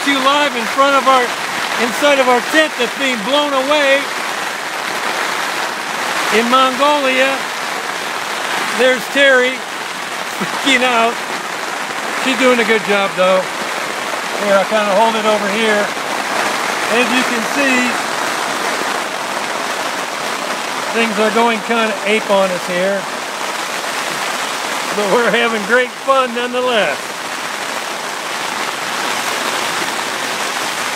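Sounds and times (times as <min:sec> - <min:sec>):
rain on tent fabric: 0:00.0 - 0:30.9.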